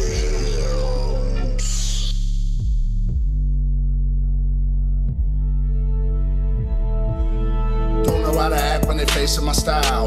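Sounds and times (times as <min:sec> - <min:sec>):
deep steady bass: 0:00.0 - 0:10.0
sustained melody: 0:04.5 - 0:10.0.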